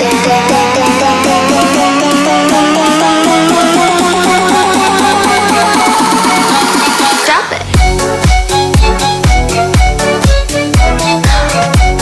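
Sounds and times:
rising synth sweep: 0.0s - 7.2s
fast repeating synth line: 0.0s - 12.0s
heavy bass beats: 0.0s - 12.0s.

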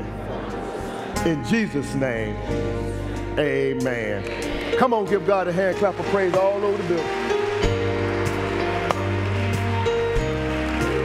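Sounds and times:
keyboard holding chords: 0.0s - 11.0s
congregation clapping: 4.2s - 11.0s.

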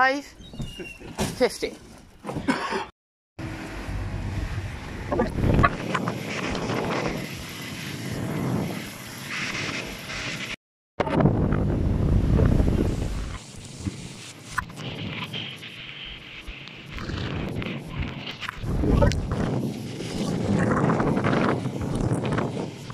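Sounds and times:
wind buffeting microphone: 3.9s - 22.9s.

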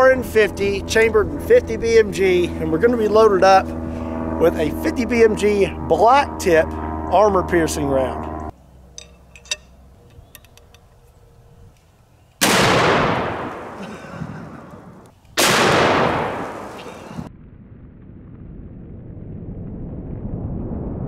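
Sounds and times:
rifle handling clicks: 9.0s - 11.0s
rifle blasts with rolling echo: 12.4s - 13.8s, 15.4s - 17.3s.

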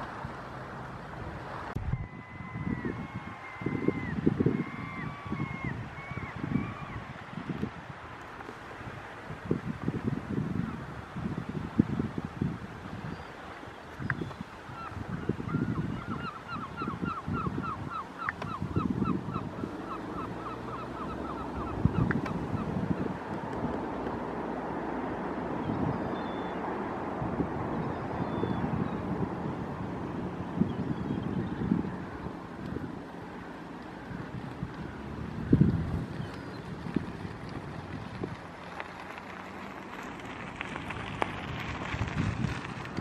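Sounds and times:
wind noise on microphone: 0.0s - 43.0s
bird calling: 1.8s - 7.1s, 13.1s - 23.2s.

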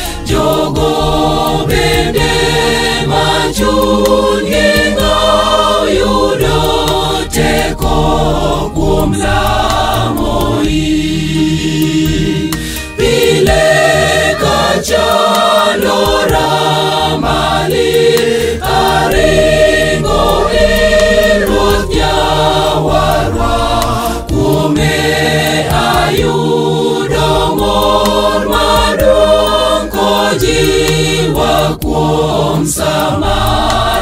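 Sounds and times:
choir singing gospel song: 0.0s - 34.0s
low musical accompaniment: 0.0s - 34.0s.

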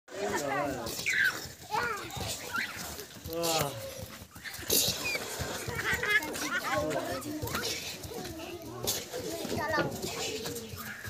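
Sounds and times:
children calling out: 0.6s - 11.0s.

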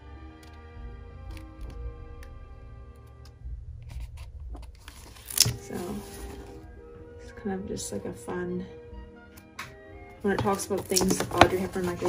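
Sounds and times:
soft background music: 0.0s - 12.0s
book pages rustling: 3.9s - 6.6s, 10.3s - 12.0s
page snap: 4.6s - 5.8s.

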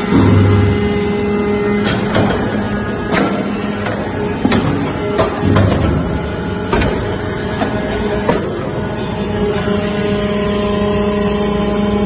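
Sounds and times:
hydraulic press hum: 0.0s - 12.0s.

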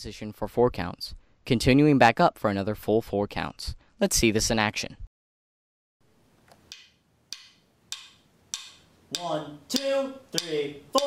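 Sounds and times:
metronome clicking: 6.7s - 11.0s.

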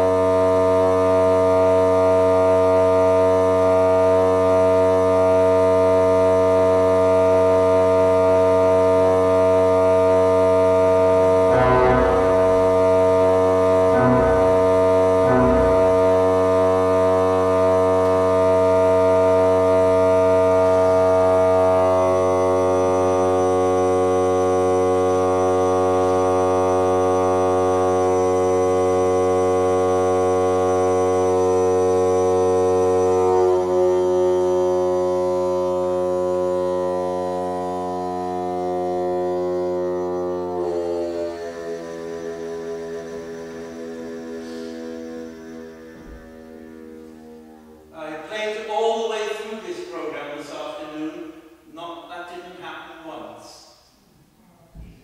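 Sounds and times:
low organ pedal note: 0.0s - 53.7s
pipe organ sustained chords: 0.0s - 54.4s.

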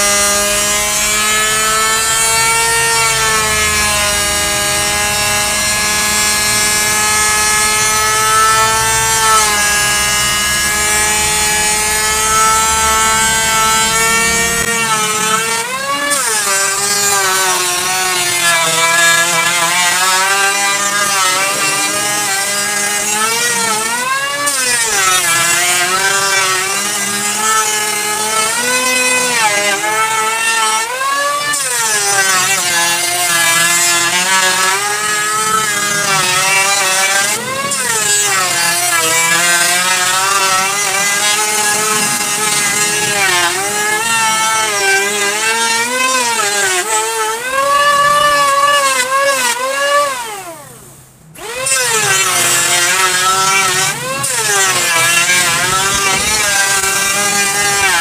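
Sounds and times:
electric hand planer on wood: 0.0s - 58.0s.

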